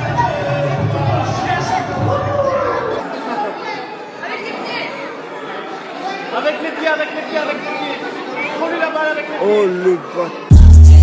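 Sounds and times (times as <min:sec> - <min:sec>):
voices chattering: 0:00.0 - 0:11.0.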